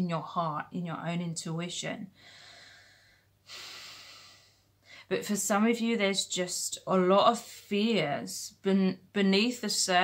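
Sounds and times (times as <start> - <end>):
woman talking: 0.0 - 2.1, 5.0 - 10.0
woman breathing in: 2.2 - 5.1.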